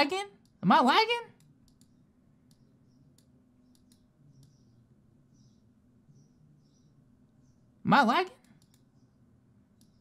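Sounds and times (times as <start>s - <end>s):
computer mouse clicks: 1.4s - 4.8s, 8.4s - 9.0s, 9.7s - 10.0s.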